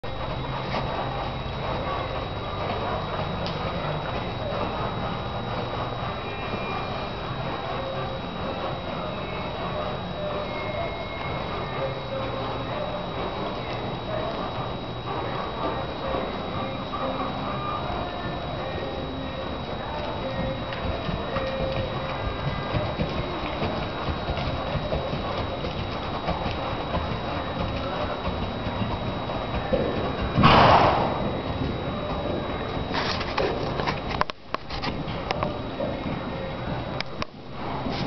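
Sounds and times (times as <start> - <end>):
horse hoofbeats on dirt: 0.1 - 38.0.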